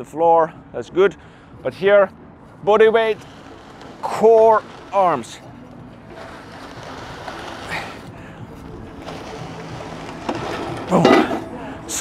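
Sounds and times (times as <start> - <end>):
metal sled scraping rubber floor: 2.8 - 11.6.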